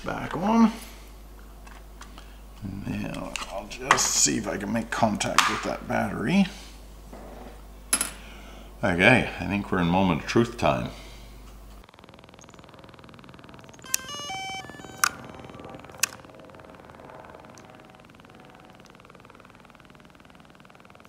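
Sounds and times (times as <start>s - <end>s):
faint steady hum: 0.0s - 21.0s
sharp clicks: 11.8s - 16.3s
electronic beep tones: 12.2s - 19.0s.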